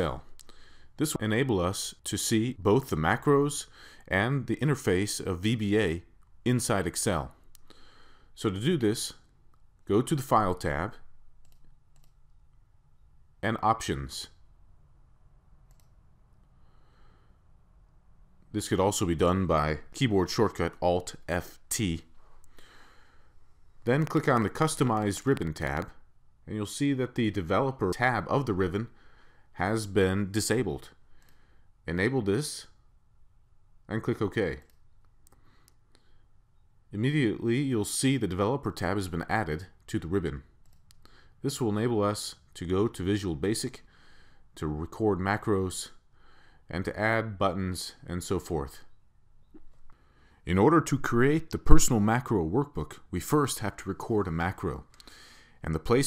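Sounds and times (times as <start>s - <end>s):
low background hiss: 0.0s - 56.0s
computer mouse clicks: 11.4s - 12.4s, 15.7s - 16.5s, 24.0s - 25.4s, 40.6s - 41.1s.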